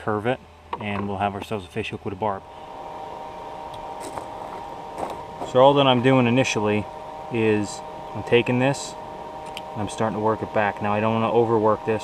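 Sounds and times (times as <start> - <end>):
air blower humming: 0.8 - 12.0.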